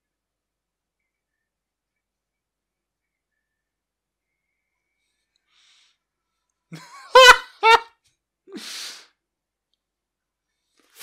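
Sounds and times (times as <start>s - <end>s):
man laughing: 6.7s - 8.0s.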